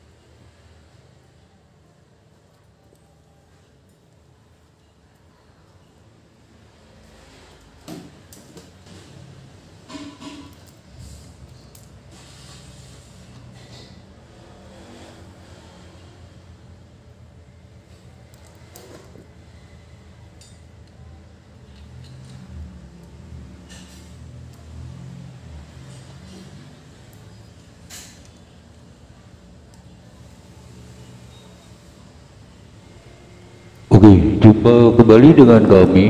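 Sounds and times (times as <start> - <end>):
steady low hum: 32.9 - 36.0.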